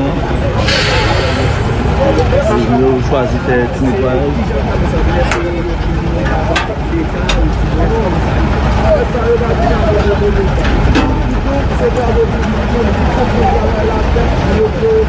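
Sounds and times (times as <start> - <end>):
diesel truck engines running: 0.0 - 15.0
people talking: 0.0 - 15.0.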